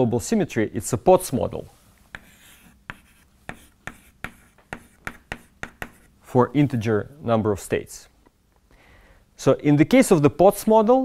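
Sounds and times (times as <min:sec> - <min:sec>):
chalk tapping on blackboard: 0:02.1 - 0:06.1.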